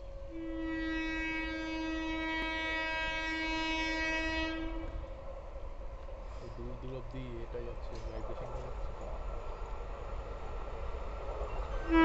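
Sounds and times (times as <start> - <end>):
train horn blast: 0.0 - 5.1, 11.7 - 12.0.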